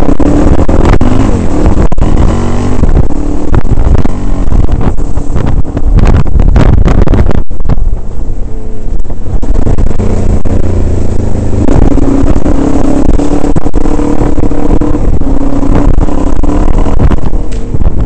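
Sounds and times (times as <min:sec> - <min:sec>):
dirt bike engine running: 0:00.0 - 0:18.0
wind rumble on microphone: 0:00.0 - 0:18.0.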